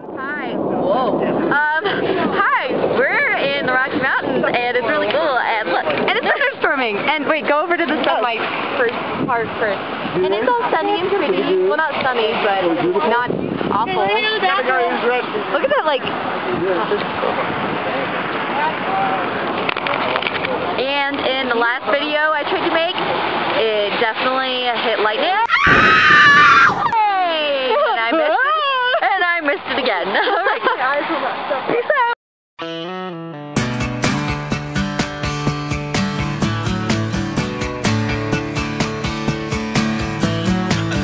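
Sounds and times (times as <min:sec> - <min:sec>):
wind noise: 0:00.0 - 0:20.7, 0:25.5 - 0:27.0
young women talking excitedly: 0:01.5 - 0:09.8, 0:23.6 - 0:32.2.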